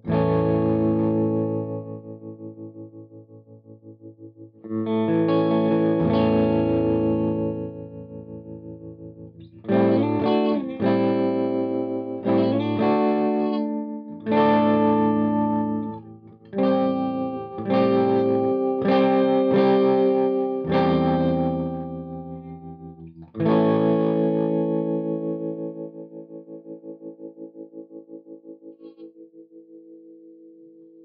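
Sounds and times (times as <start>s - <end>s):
distorted electric guitar chords: 0.0s - 4.0s, 4.6s - 30.8s.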